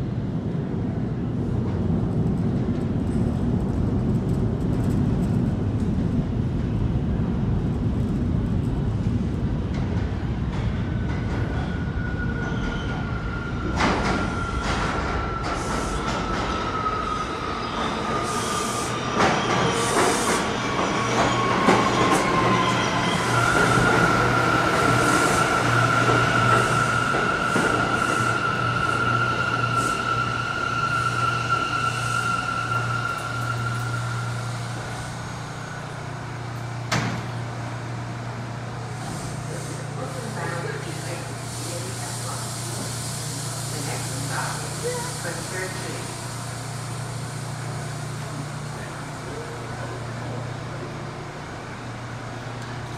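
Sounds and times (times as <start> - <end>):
subway train whine: 0.0 - 52.9
train hum: 0.0 - 52.9.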